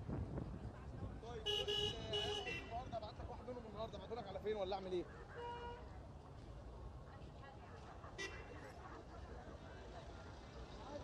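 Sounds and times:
low street noise: 0:00.0 - 0:11.0.

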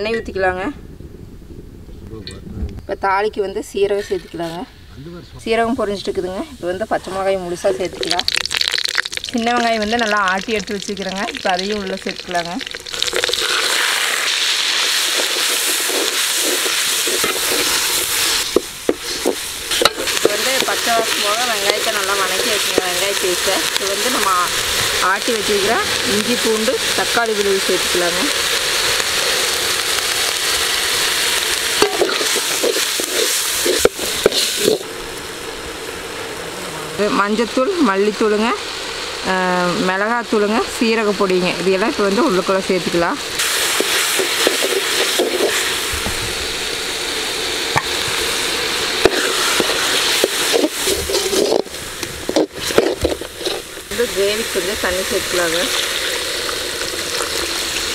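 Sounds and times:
paste sizzling in hot oil: 0:05.8 - 0:36.2, 0:37.0 - 0:57.9
spoon scraping metal pan: 0:49.0 - 0:53.7.

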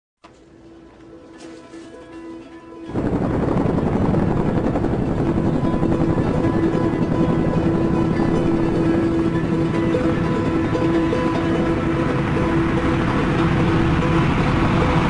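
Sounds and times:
background music: 0:00.2 - 0:15.0
helicopter rotors and engines: 0:00.3 - 0:15.0.

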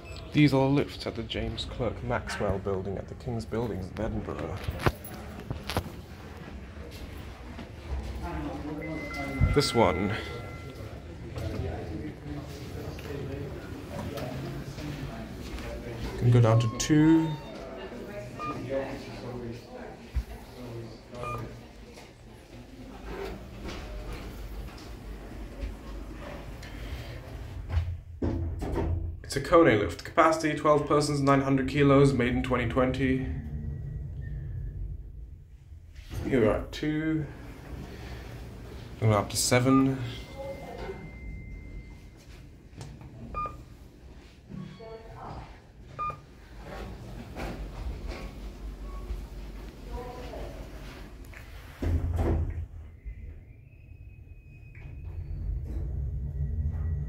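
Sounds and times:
low hum inside lift: 0:00.0 - 0:57.0
lift button electronic beeps: 0:16.4 - 0:17.7
lift low hum: 0:32.0 - 0:39.0, 0:52.8 - 0:57.0.

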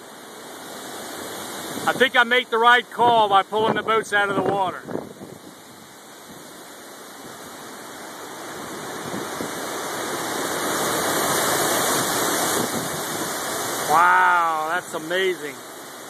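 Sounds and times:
wind gusting through tree leaves: 0:00.0 - 0:16.0.

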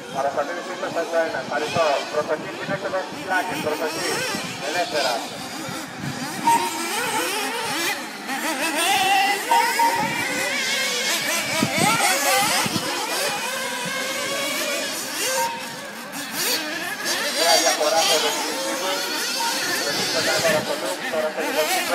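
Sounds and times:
small racing engines whining: 0:00.0 - 0:21.9.

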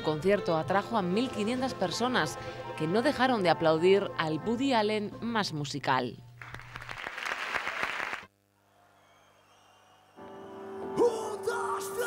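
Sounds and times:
audience applause: 0:06.4 - 0:08.3.

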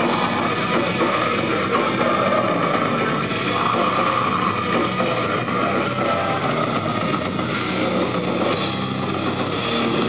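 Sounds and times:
metal band playing live: 0:00.0 - 0:10.0.

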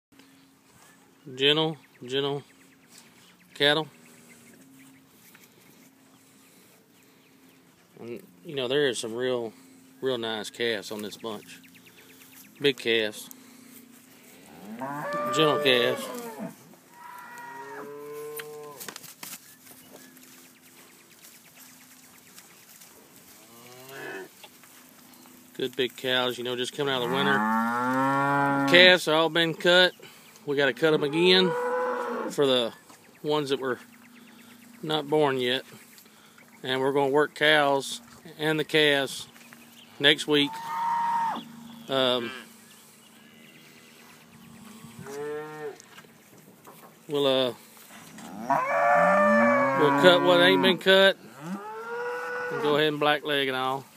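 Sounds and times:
cattle mooing: 0:14.5 - 0:18.8, 0:26.9 - 0:28.9, 0:31.0 - 0:32.3, 0:48.2 - 0:52.8.

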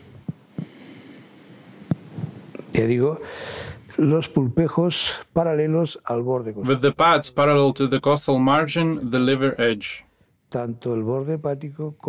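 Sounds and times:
faint breathing: 0:00.0 - 0:04.0.

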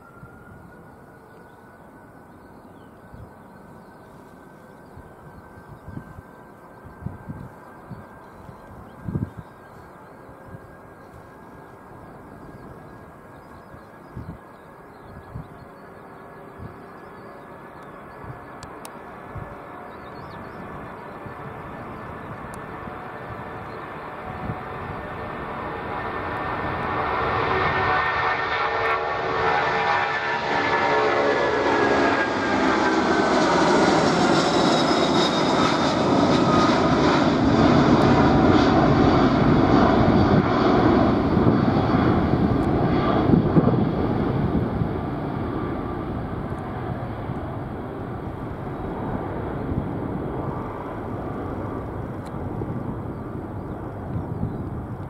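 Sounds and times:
jet engines whining: 0:00.0 - 0:55.0
loud low jet rumble: 0:00.0 - 0:55.0.

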